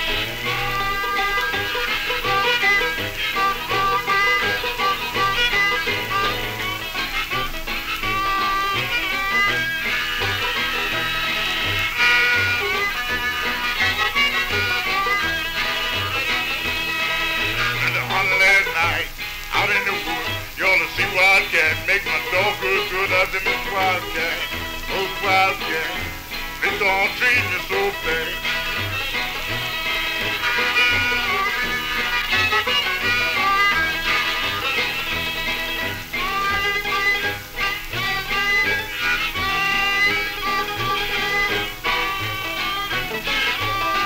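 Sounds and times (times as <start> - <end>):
old-time jug band music: 0.0 - 44.0
person singing: 0.0 - 44.0.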